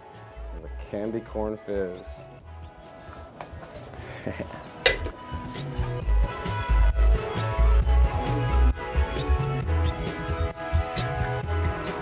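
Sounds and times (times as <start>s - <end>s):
faint background music: 0.0s - 12.0s
short laugh: 4.0s - 4.7s
barware clink: 4.8s - 5.2s.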